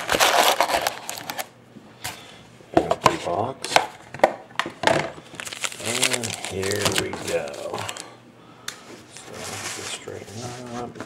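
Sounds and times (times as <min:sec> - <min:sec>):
foil card packs crinkling: 0:00.0 - 0:01.5, 0:05.2 - 0:08.2.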